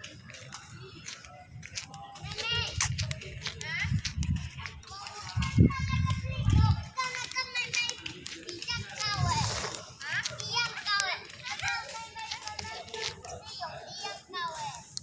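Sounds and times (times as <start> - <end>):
children chattering and calling out: 0.0 - 15.0.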